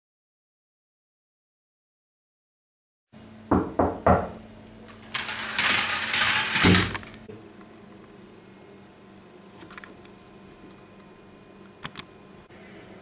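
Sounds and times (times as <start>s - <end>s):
knocks on a door: 3.5s - 4.4s
door handle rattling and scraping: 5.1s - 7.2s.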